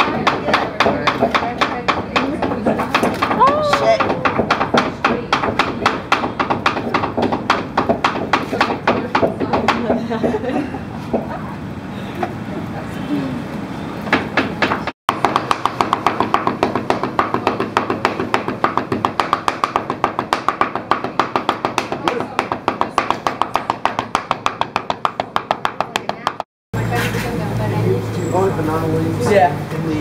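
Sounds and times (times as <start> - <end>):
cleaver chopping on wooden board: 0.0 - 10.0, 14.1 - 26.5.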